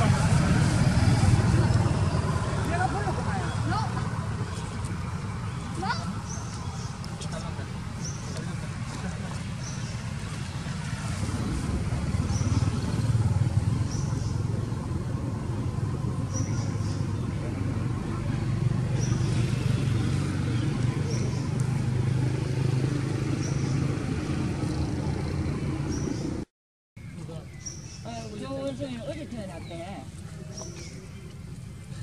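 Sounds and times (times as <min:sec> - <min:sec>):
engine hum: 0:00.0 - 0:26.5.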